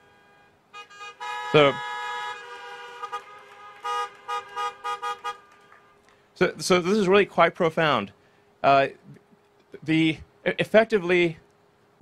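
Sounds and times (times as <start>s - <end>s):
car horns honking: 0.0s - 6.0s.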